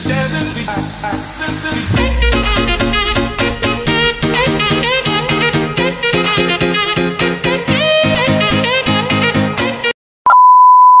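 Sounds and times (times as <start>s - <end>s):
background music: 0.0s - 9.8s.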